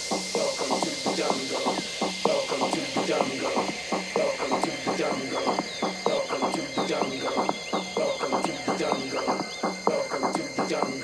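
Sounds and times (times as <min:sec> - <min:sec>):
tech house music: 0:00.0 - 0:11.0.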